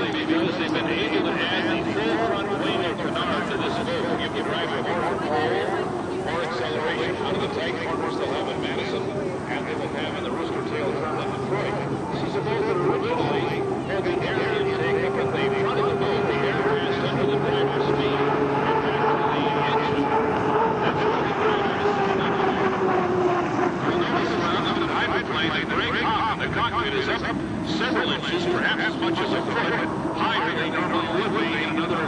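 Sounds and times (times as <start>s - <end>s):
turbine engine whine: 0.0s - 32.0s.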